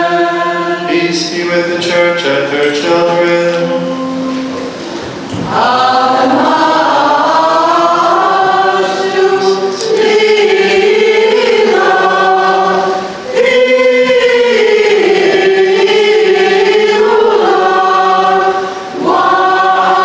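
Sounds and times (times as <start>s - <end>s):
choir singing a hymn: 0.0s - 20.0s.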